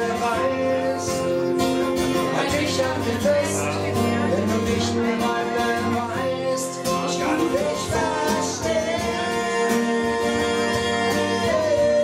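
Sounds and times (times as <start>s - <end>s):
strummed acoustic guitars: 0.0s - 12.0s
voices singing: 0.0s - 12.0s.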